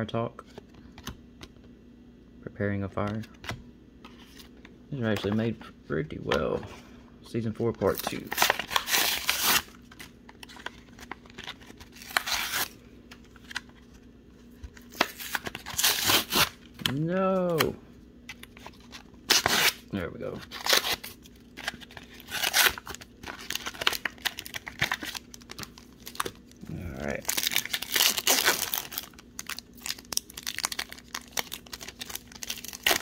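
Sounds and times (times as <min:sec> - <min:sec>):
card backing tearing and crinkling: 0:07.5 - 0:14.0, 0:14.6 - 0:33.0.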